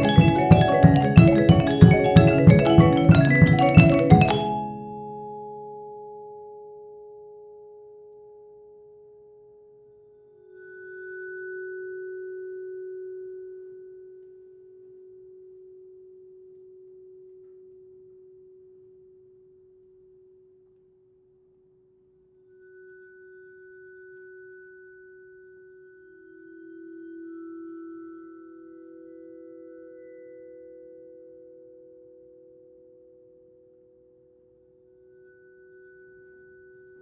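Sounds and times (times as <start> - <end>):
bowed vibraphone tones: 0.0 - 5.7, 22.6 - 31.9.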